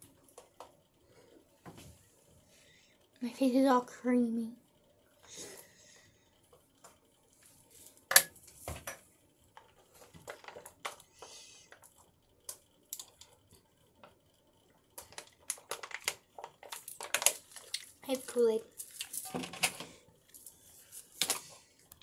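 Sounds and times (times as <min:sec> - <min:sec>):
small hard objects clattering: 0:15.0 - 0:19.7.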